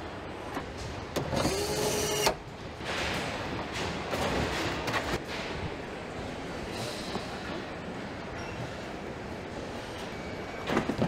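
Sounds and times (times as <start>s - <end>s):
assembly hall background noise: 0.0s - 11.0s.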